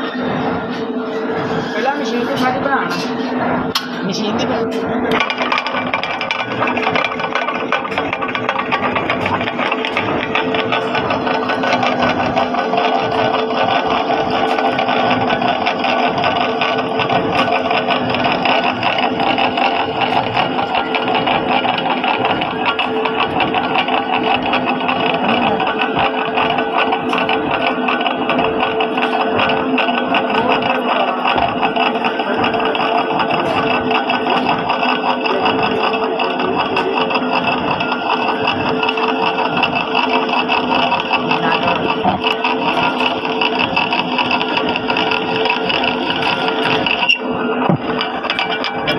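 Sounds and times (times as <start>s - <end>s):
metal lathe cutting steel: 0.0s - 48.9s.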